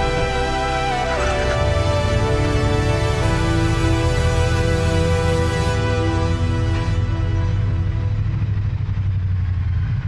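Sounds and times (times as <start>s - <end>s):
motorcycle engine rumbling: 1.2s - 10.0s.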